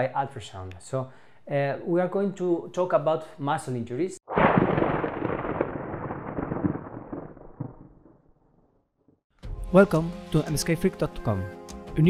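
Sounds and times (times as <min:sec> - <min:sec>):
booming crackling burst: 0:04.3 - 0:09.1.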